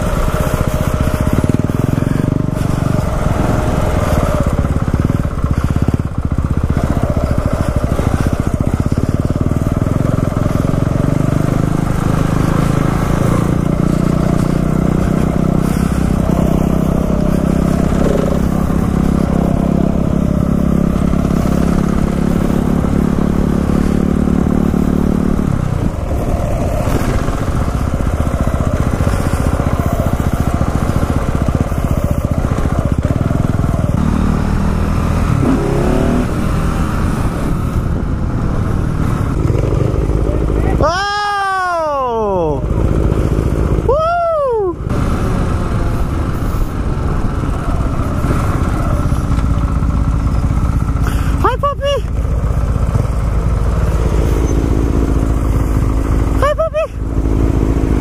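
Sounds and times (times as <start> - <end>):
dirt bike engine revving: 0.0 - 44.1, 44.7 - 58.0.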